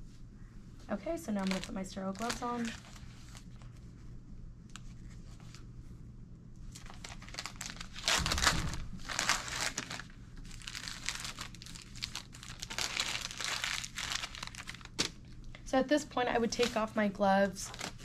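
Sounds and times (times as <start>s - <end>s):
paper wrapper crinkling: 1.0s - 3.8s, 6.7s - 15.6s, 17.7s - 18.0s.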